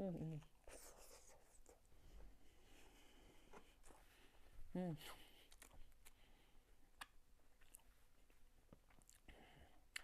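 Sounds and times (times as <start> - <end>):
soft chewing: 0.2 - 10.0.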